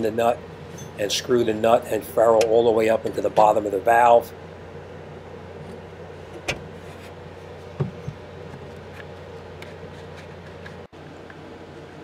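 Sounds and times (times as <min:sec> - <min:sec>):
low electrical hum: 0:00.0 - 0:12.0.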